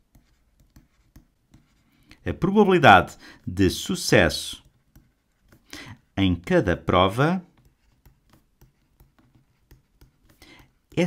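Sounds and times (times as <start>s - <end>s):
stylus tapping on drawing tablet: 0.0s - 1.8s, 4.6s - 5.7s, 6.4s - 11.0s.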